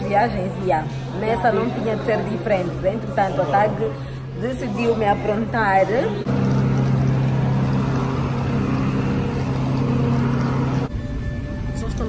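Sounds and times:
aircraft engine hum: 0:06.0 - 0:12.0.

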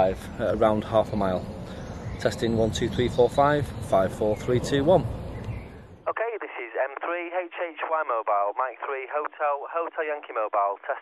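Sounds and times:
man talking over two-way radio: 0:00.0 - 0:01.5, 0:02.2 - 0:05.1, 0:06.1 - 0:11.0
outdoor background noise: 0:00.0 - 0:11.0.

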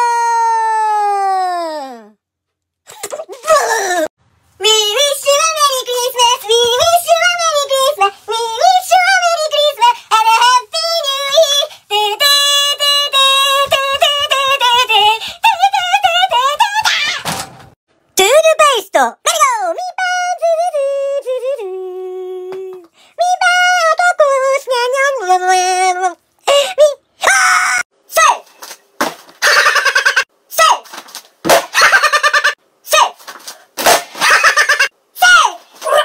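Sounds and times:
high-pitched singing voice: 0:04.6 - 0:17.3, 0:19.3 - 0:28.4.

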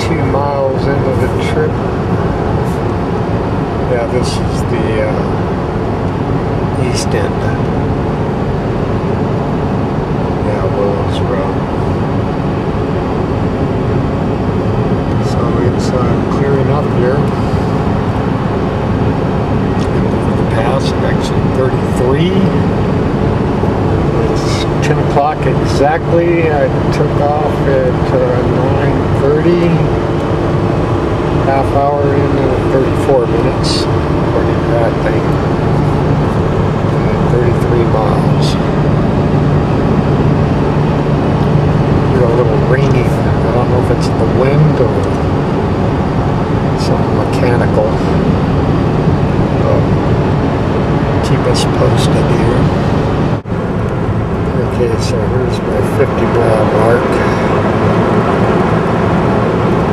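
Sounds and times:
wavering voice-like sound: 0:00.0 - 0:01.7, 0:03.8 - 0:05.3, 0:06.8 - 0:07.6, 0:10.5 - 0:11.6, 0:19.8 - 0:22.6, 0:24.1 - 0:29.9, 0:31.4 - 0:36.0, 0:37.0 - 0:38.6, 0:42.1 - 0:45.2, 0:46.8 - 0:48.1, 0:49.6 - 0:49.9, 0:54.6 - 0:57.7
engine and road noise in cabin: 0:00.0 - 0:59.9.

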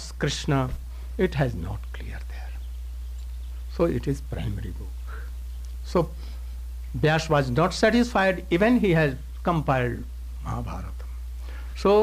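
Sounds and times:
man speaking into microphone: 0:00.0 - 0:02.5, 0:03.7 - 0:05.0, 0:06.9 - 0:11.0, 0:11.8 - 0:12.0
low electrical hum: 0:00.0 - 0:12.0
faint breathing: 0:00.8 - 0:01.2, 0:05.0 - 0:05.4, 0:06.1 - 0:06.7, 0:11.1 - 0:11.8.

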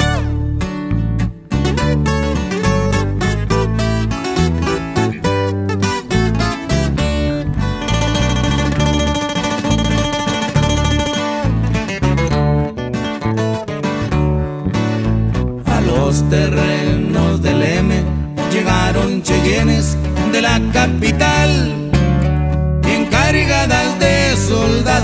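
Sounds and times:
bass line: 0:00.0 - 0:25.0
picked acoustic guitar: 0:00.0 - 0:25.0.

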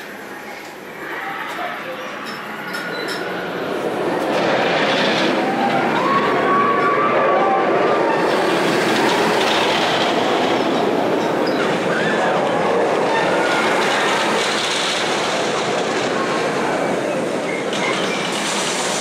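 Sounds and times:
ride train rumbling on track: 0:00.0 - 0:19.0.

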